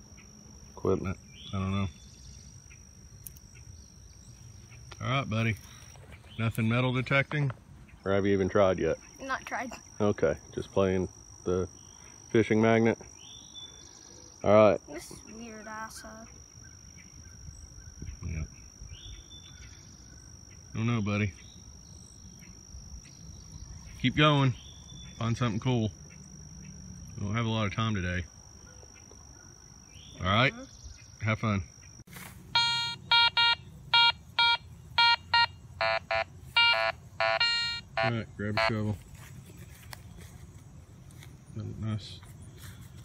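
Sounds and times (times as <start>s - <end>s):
high-pitched insect drone: 0.0s - 6.0s, 8.1s - 40.7s
metal detector beeps: 32.5s - 38.9s.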